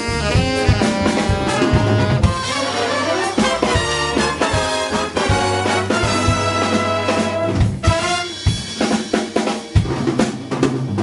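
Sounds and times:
short horn stabs: 0.0s - 8.6s
drum kit break: 0.0s - 11.0s.

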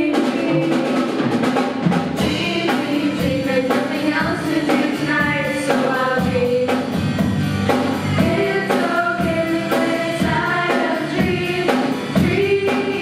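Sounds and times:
female voices singing together: 0.0s - 1.1s, 2.2s - 6.8s, 8.2s - 13.0s
drums: 0.0s - 13.0s
guitar: 0.0s - 13.0s
keyboard: 0.0s - 13.0s.

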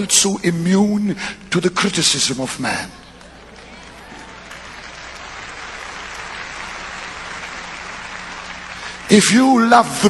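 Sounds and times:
audience applauding: 2.8s - 10.0s.

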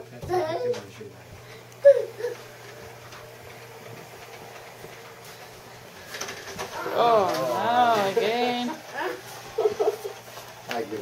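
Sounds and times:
toy train motor hum: 0.3s - 11.0s.

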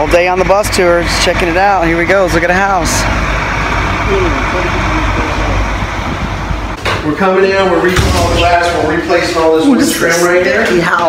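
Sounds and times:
vehicle engine idling: 0.0s - 6.8s.

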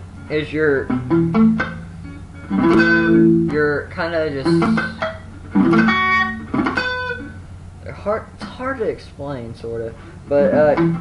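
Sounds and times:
electric guitar picked phrases: 0.0s - 11.0s.

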